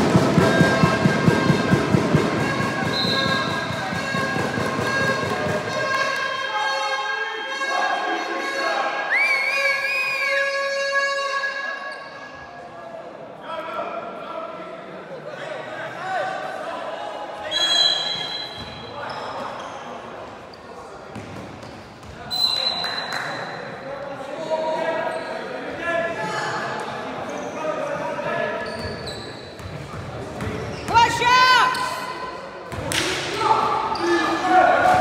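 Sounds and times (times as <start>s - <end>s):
shoe squeals: 2.3s - 7.8s, 17.4s - 20.9s, 21.6s - 23.8s, 24.4s - 25.6s, 27.2s - 27.8s, 28.5s - 29.8s, 30.4s - 32.2s, 33.5s - 34.6s.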